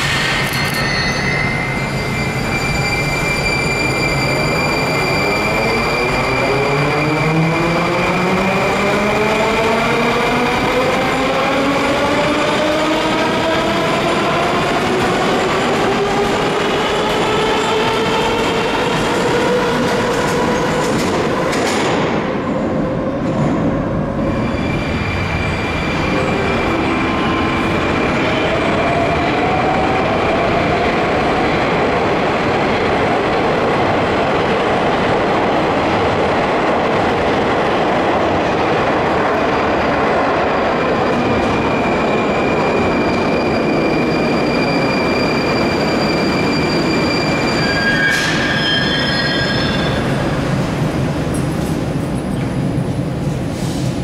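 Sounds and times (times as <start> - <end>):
train rumbling with high tone: 0.0 - 54.0.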